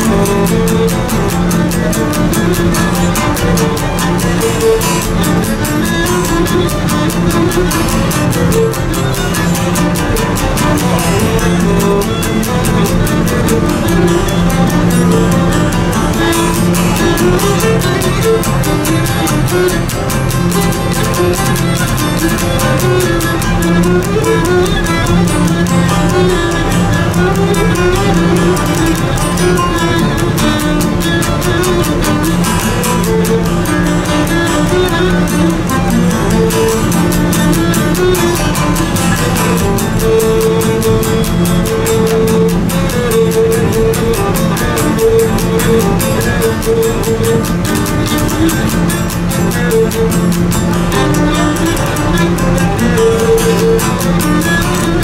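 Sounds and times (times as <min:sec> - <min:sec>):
bowed lyra dance melody: 0:00.0 - 0:55.0
lute strumming rhythm: 0:00.0 - 0:55.0.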